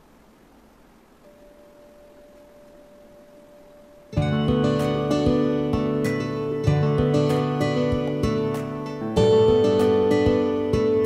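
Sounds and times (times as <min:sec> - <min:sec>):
faint pure tone: 0:00.0 - 0:06.9
low hiss: 0:00.0 - 0:11.0.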